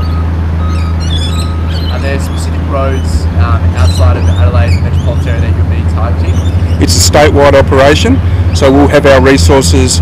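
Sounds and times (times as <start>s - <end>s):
bird chirps: 0.0s - 7.0s
low outdoor hum: 0.0s - 10.0s.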